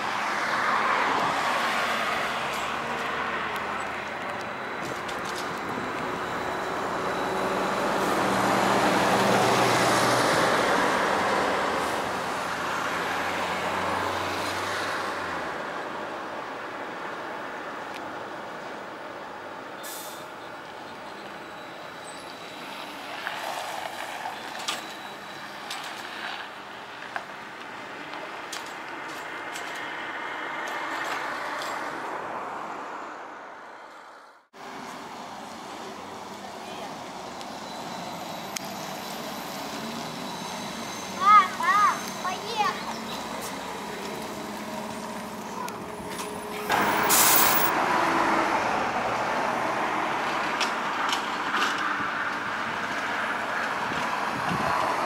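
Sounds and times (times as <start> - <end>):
road noise of passing traffic: 0.0 - 55.0.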